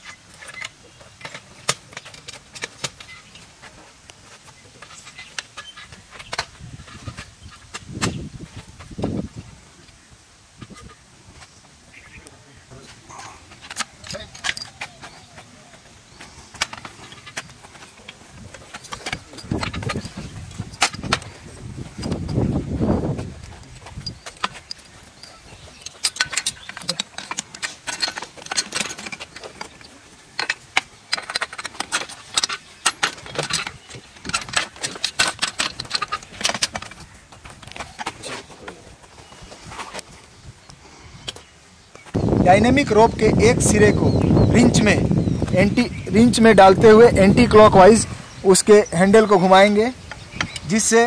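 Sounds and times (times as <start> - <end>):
metal hardware clinking: 13.1 - 15.8, 16.5 - 38.4.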